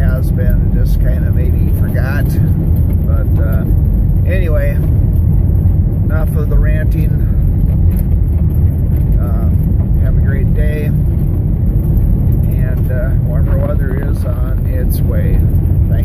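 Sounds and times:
car driving on gravel: 0:00.0 - 0:16.0.

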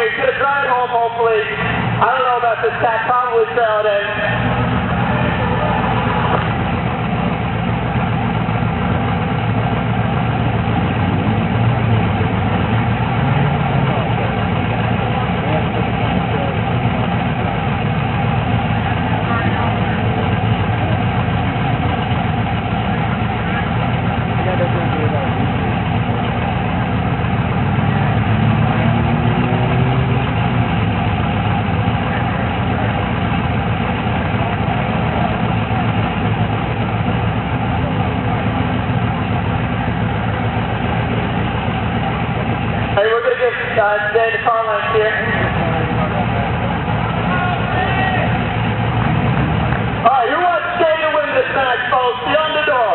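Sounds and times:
race car engines idling: 0:00.0 - 0:52.9.

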